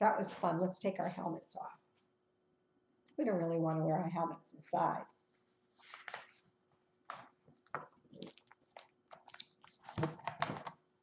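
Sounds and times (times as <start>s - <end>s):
book rustling and knocking: 5.8s - 10.8s.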